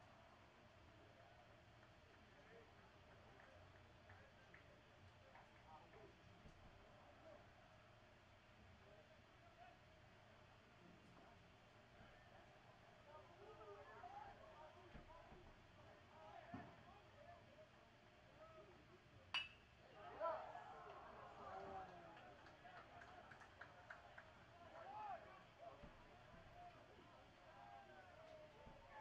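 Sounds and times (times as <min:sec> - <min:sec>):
ringing ping of baseball: 0:19.3 - 0:19.7.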